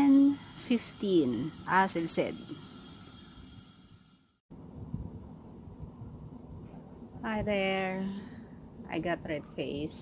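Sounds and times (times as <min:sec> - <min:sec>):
low outdoor rumble with hiss: 0:04.5 - 0:10.0.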